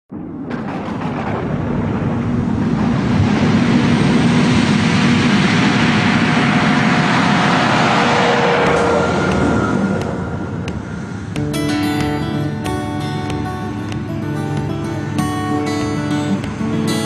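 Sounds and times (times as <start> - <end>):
heavy machinery engine roar: 0.6 - 17.0.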